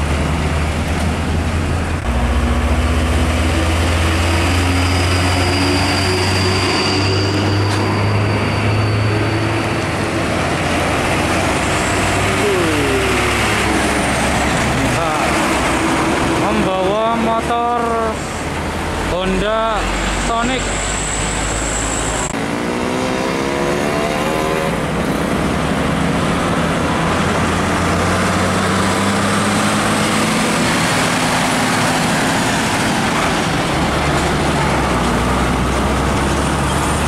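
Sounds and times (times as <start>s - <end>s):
diesel truck engine revving: 0.0s - 37.0s
truck engine and tyre noise: 0.0s - 37.0s.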